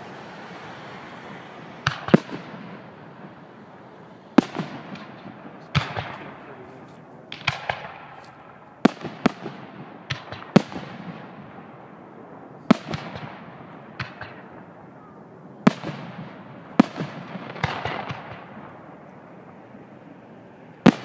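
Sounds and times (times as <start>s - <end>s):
fireworks bangs with echo: 0.0s - 21.0s
small firework pops: 1.8s - 2.8s, 4.4s - 11.4s, 12.6s - 14.7s, 15.6s - 19.2s.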